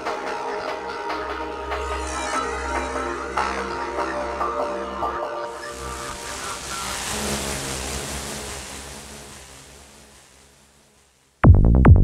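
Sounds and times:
synthesized rushing noise: 5.6 - 12.0.

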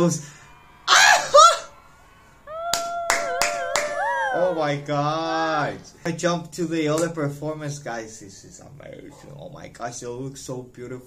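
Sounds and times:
high-pitched vocal note: 2.5 - 4.9
hand claps: 2.7 - 4.2.

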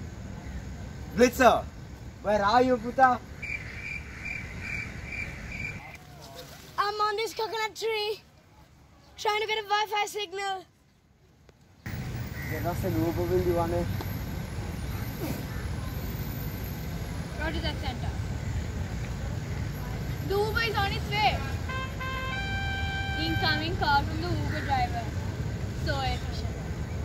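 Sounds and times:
cricket chirping: 0.0 - 5.9.

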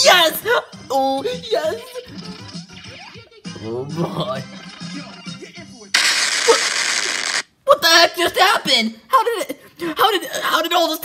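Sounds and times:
faint tv show music: 0.0 - 6.7, 7.4 - 11.0
loud burst of hissing noise: 6.0 - 7.4.

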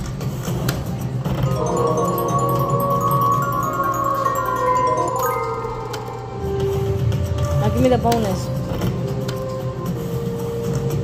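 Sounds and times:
slot machine win tune: 1.4 - 8.1.

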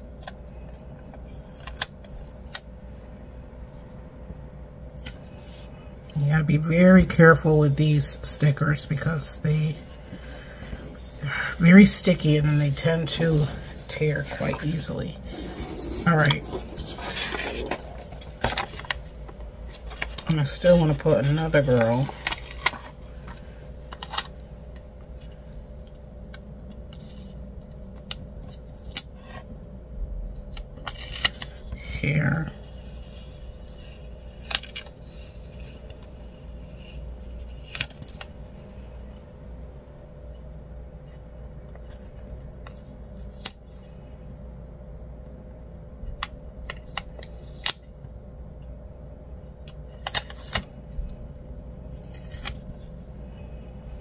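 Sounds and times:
faint steady hum: 0.0 - 54.0
paper stickers rustling: 9.0 - 24.3.

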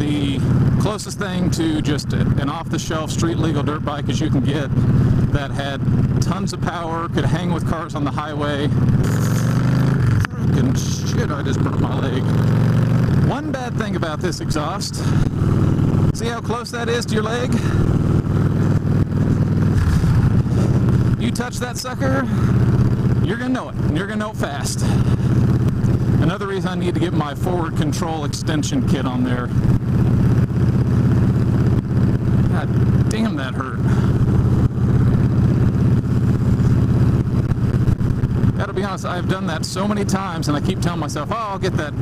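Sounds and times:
motorcycle engine running: 0.0 - 42.0.

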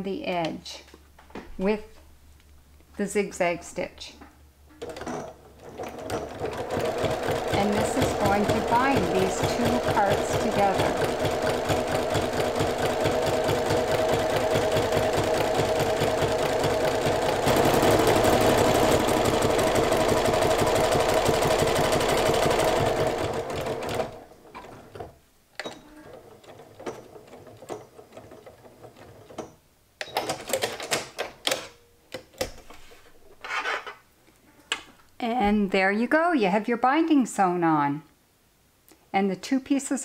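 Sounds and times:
sewing machine running: 4.8 - 25.1.

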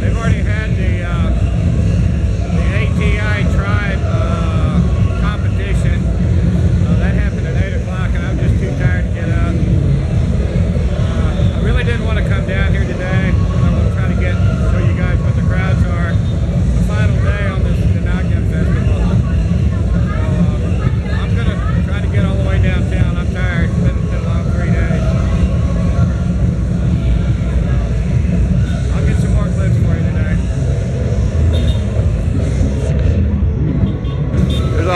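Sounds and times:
street rumble: 0.0 - 34.9
voices: 0.0 - 34.9.

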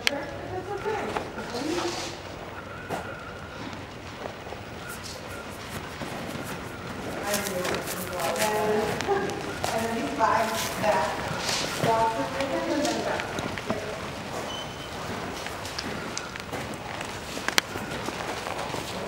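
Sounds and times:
people talking indistinctly: 6.4 - 14.2.

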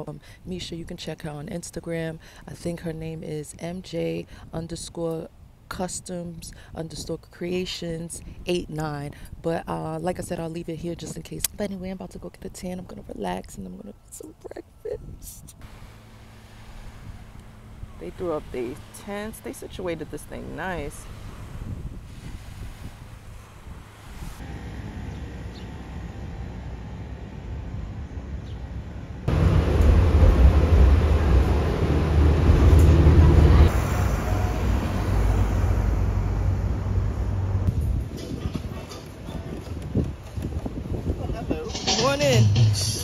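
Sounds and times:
bus engine rumble: 12.8 - 43.0
wind on microphone: 14.4 - 15.6, 16.6 - 24.4, 29.3 - 43.0
road noise: 15.5 - 43.0.

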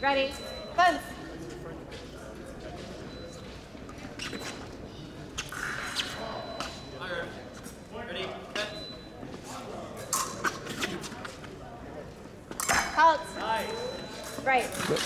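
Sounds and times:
chatter of voices: 0.0 - 15.0.

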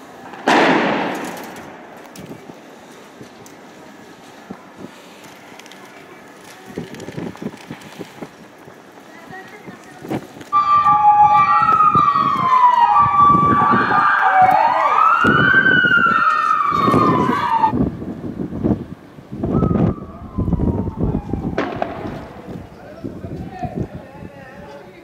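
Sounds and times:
police siren: 10.5 - 17.8, 19.4 - 22.3.

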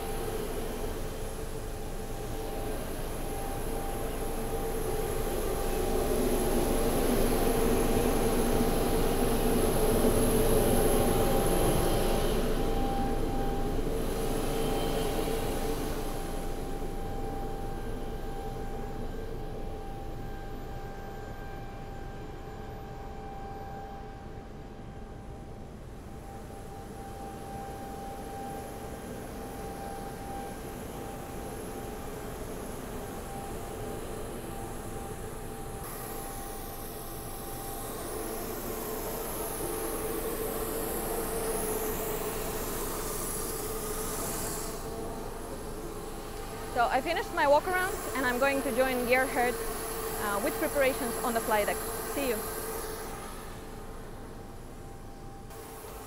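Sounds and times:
auxiliary power unit whine: 0.0 - 56.0.

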